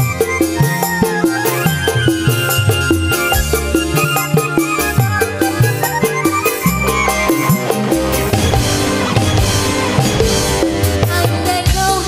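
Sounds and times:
instrumental band music: 0.0 - 12.0.

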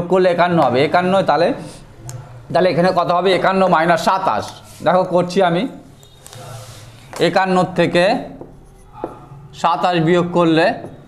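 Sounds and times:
man speaking: 2.5 - 8.4
marker writing on whiteboard: 3.0 - 9.4
tap on whiteboard: 8.4 - 9.2.

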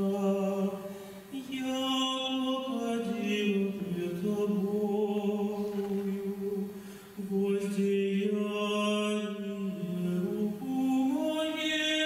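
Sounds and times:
man singing chant: 0.0 - 12.0.

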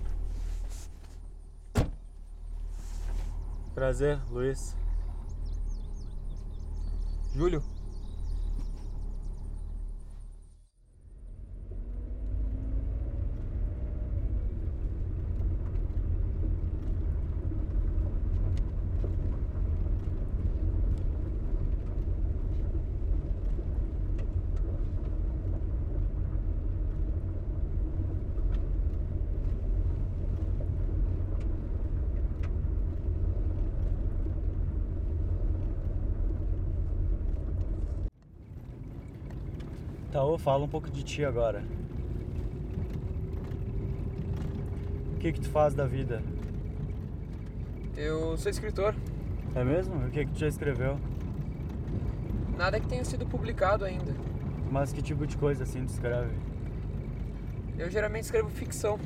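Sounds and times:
car engine: 0.0 - 59.0
road rumble: 0.0 - 59.0.

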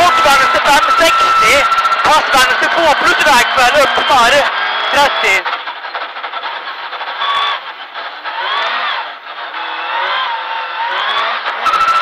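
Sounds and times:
rally car engine accelerating: 0.0 - 12.0.

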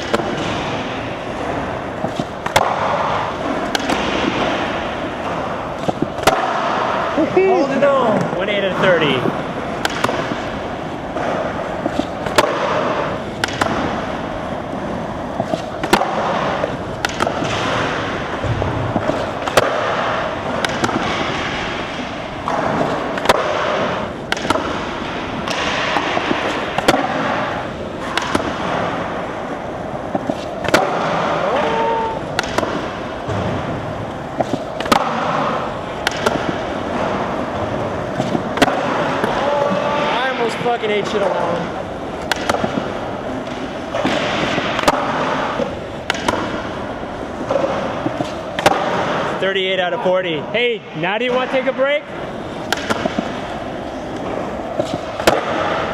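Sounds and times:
skateboard wheels rolling on concrete: 0.0 - 55.9
skateboard pops and clacks: 2.0 - 4.6, 5.2 - 7.0, 9.8 - 10.4, 11.2 - 14.0, 15.4 - 29.0, 30.1 - 33.6, 34.3 - 39.9, 42.2 - 46.7, 47.4 - 49.4, 52.7 - 53.4, 54.1 - 55.9.

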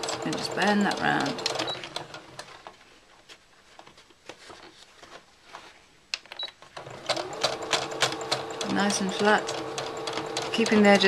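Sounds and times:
fabric rustling: 2.3 - 6.1.

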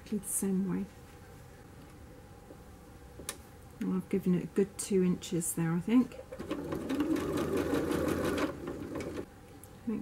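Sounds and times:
electric sewing machine stitching: 6.3 - 9.3.

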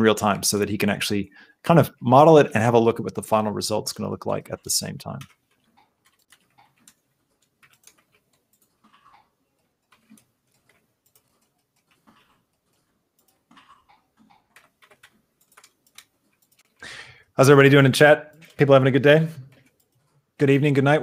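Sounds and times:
keyboard and mouse clicks: 4.3 - 16.8, 18.3 - 18.8, 19.4 - 20.4.

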